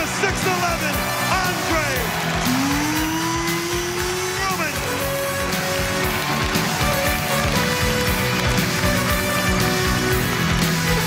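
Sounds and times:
announcer's amplified voice: 0.0s - 5.2s
music with pounding beat: 0.0s - 11.0s.

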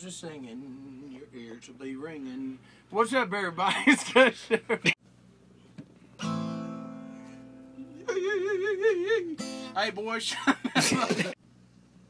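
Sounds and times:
acoustic guitar chord strummed: 6.2s - 11.3s.

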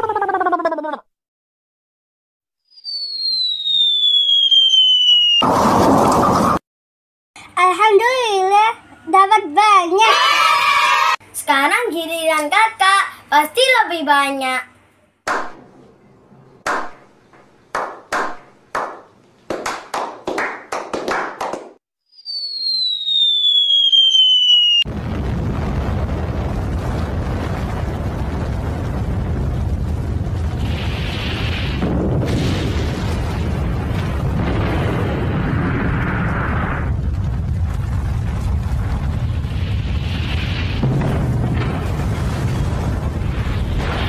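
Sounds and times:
falling bomb whistle: 2.6s - 5.5s, 22.1s - 24.9s
explosion-like boom: 24.8s - 44.0s.

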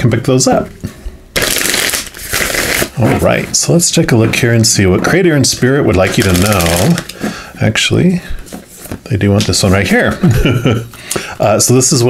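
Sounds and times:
cards being riffle-shuffled: 1.4s - 3.0s, 6.0s - 7.3s.

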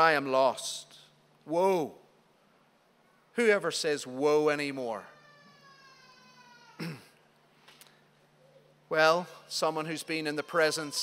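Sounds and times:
low steady hum: 0.0s - 11.0s
man clearing his throat: 6.8s - 7.2s.

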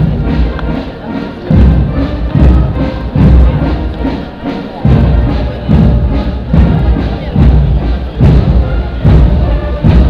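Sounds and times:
heavy low beat: 0.0s - 10.0s
procession band music: 0.0s - 10.0s.

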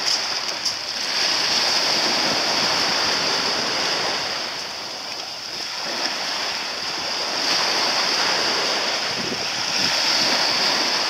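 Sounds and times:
water lapping around boats: 0.0s - 11.0s
wind on microphone: 0.0s - 11.0s.

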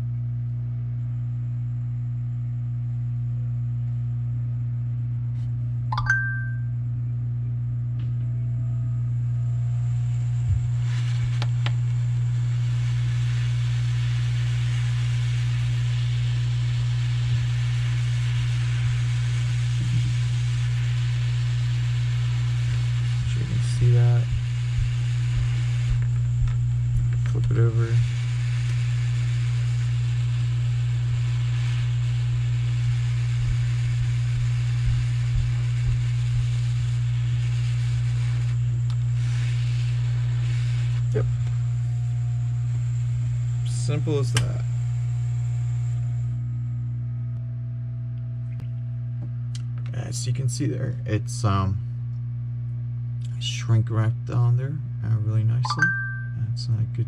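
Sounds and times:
heat gun blowing air: 10.5s - 41.6s.

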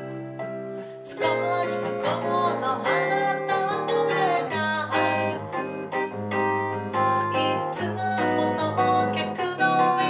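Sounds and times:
electric guitar: 0.0s - 10.0s
keyboard: 0.0s - 10.0s
woman singing into a microphone: 1.0s - 5.7s, 6.9s - 10.0s.

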